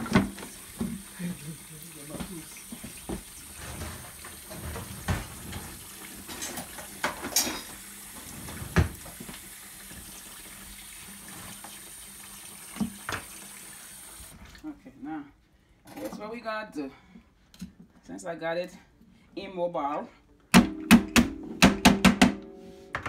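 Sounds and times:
faucet running into a sink: 0:00.0 - 0:14.3.

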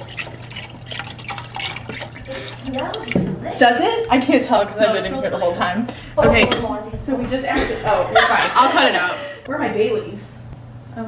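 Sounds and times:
broth bubbling and sizzling: 0:00.0 - 0:03.6.

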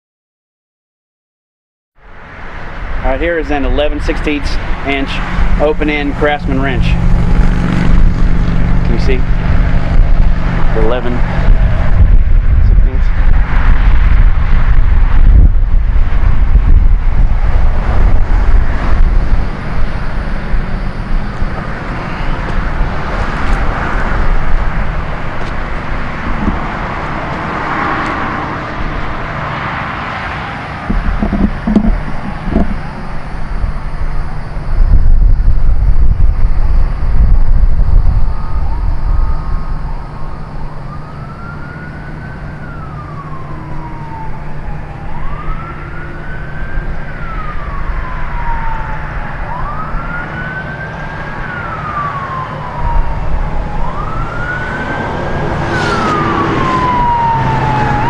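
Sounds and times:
passing traffic rumble: 0:02.0 - 0:58.0
wind: 0:02.0 - 0:58.0
siren wailing: 0:02.6 - 0:58.0.

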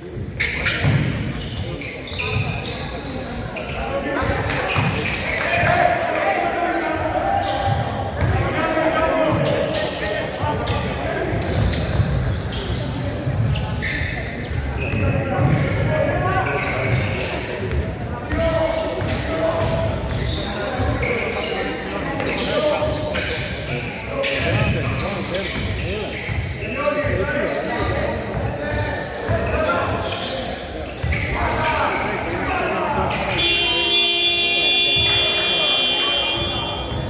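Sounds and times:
basketball bouncing on court: 0:00.2 - 0:01.5, 0:07.5 - 0:08.5, 0:11.3 - 0:14.0, 0:14.8 - 0:15.9, 0:16.8 - 0:20.4.

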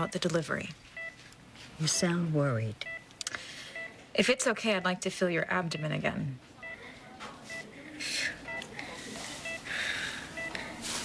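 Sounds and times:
patient monitor beeping: 0:00.0 - 0:11.0
breathy sounds: 0:08.0 - 0:10.8.

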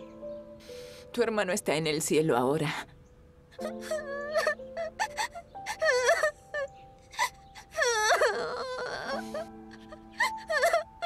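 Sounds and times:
soft background music: 0:00.0 - 0:11.0
girl crying and wailing: 0:03.5 - 0:11.0.

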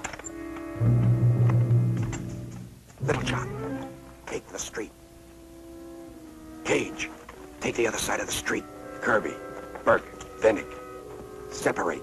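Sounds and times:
background music steady tones: 0:00.0 - 0:12.0.

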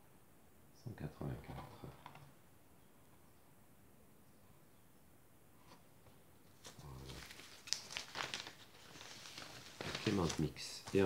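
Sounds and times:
paper record sleeve rustling: 0:06.5 - 0:11.0.

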